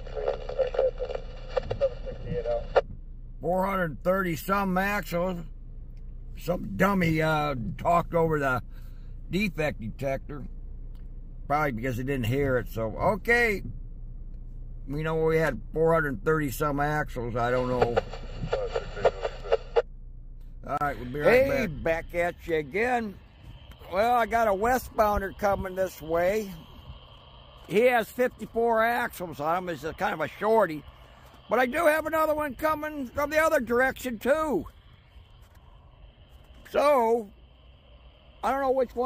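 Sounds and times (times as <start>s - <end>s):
automated voice over radio: 0.0s - 2.8s, 17.1s - 19.8s, 20.7s - 23.1s, 23.8s - 26.7s
radio transmission interference: 0.0s - 2.9s, 17.1s - 19.8s, 20.7s - 37.8s.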